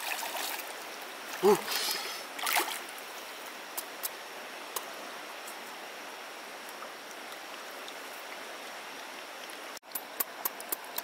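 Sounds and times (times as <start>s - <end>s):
flowing river water: 0.0s - 11.0s.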